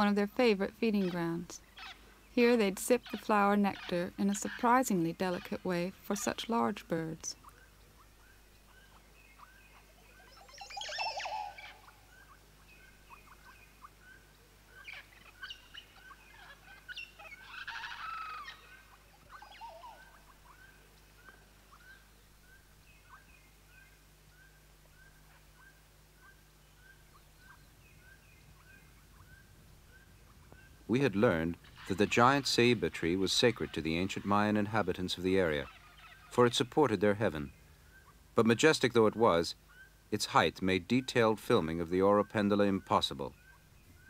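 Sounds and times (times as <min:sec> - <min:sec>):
birds chirping and calling: 0:00.0 - 0:44.0.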